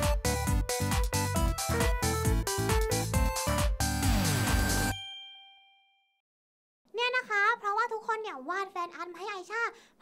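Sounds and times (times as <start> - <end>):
bell-like ding: 4.6 - 6.2.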